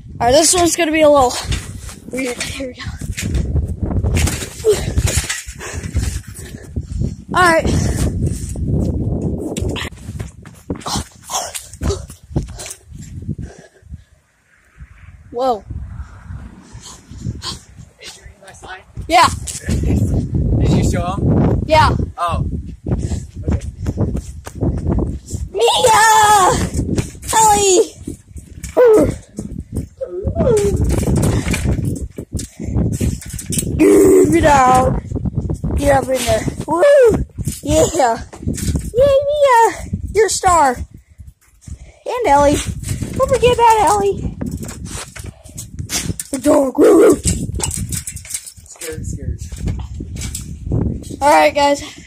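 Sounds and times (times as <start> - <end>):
wind rumble on microphone: 0.0 - 52.0
high-pitched wordless cries: 25.5 - 27.9, 28.7 - 29.3, 30.0 - 30.9, 33.8 - 35.0, 46.3 - 47.4.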